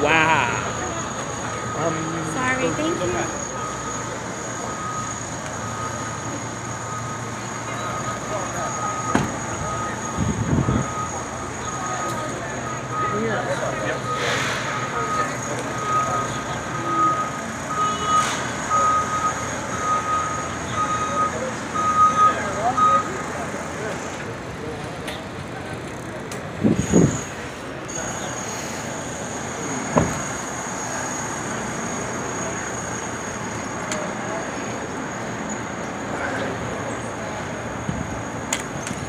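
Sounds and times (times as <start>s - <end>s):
reversing alarm beeping: 0.0s - 23.5s, 26.8s - 35.8s
city street noise: 0.0s - 39.0s.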